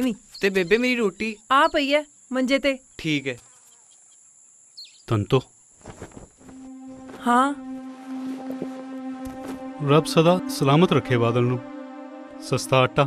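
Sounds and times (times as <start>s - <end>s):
low steady tone: 6.5s - 13.0s
person speaking: 7.0s - 7.6s, 9.4s - 13.0s.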